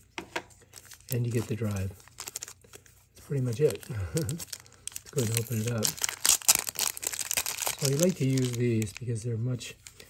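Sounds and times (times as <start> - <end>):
plastic bag crinkling: 0.6 - 10.0
person speaking: 1.0 - 2.1, 3.2 - 6.2, 7.6 - 9.8.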